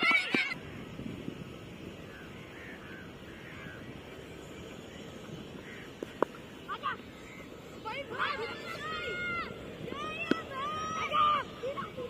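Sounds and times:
children shouting: 0.0s - 0.6s, 7.9s - 12.0s.

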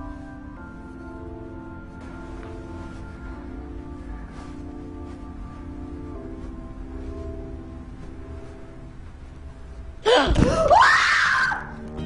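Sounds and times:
person gasping into a scream: 10.0s - 11.6s.

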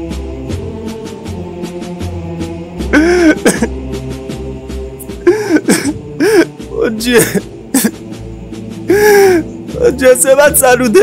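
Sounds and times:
background music: 0.0s - 11.0s
man's anguished cry: 3.0s - 3.7s, 5.3s - 7.9s.

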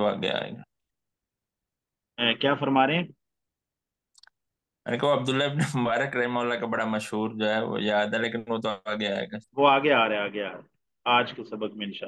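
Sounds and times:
speech: 4.9s - 12.0s.

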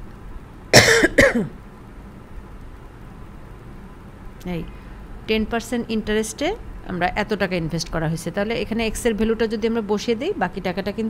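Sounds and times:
person coughing: 0.8s - 1.6s.

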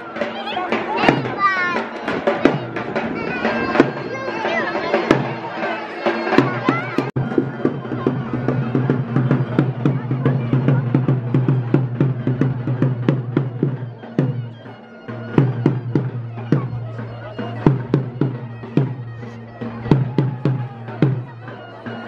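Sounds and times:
drum beating fast: 0.0s - 22.0s
reedy wind instrument drone: 12.0s - 22.0s.

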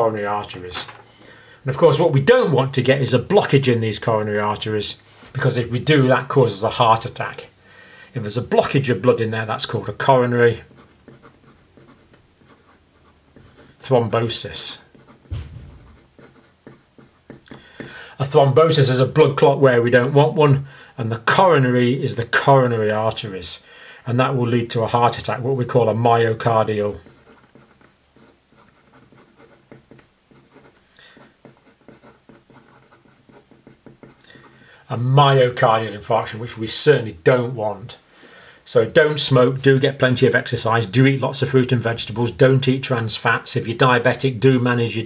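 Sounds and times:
pen writing on paper: 14.9s - 17.5s, 27.0s - 34.6s.

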